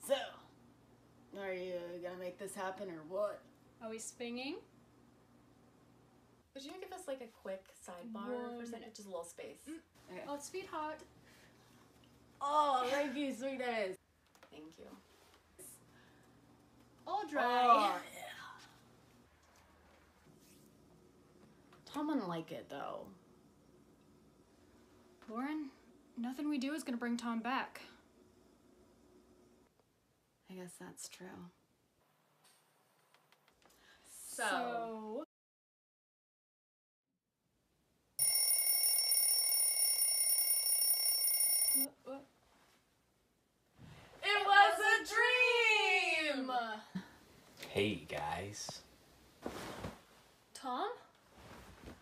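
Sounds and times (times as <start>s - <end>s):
alarm clock ringing: 38.2s - 41.9s.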